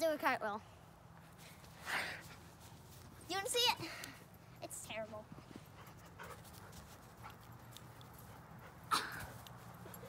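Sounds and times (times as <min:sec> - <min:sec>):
dog panting: 0:05.6 - 0:08.9.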